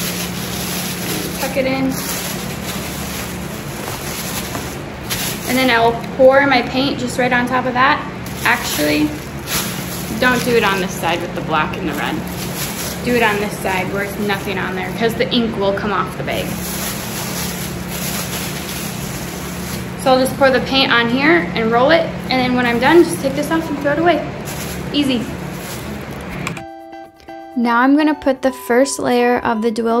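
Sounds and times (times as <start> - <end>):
plastic bag crinkling: 0.0 - 6.8, 8.1 - 21.0, 22.1 - 26.6.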